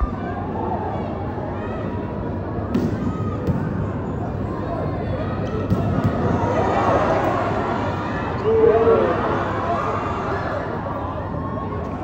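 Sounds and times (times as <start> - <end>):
crowd voices din: 0.0 - 12.0.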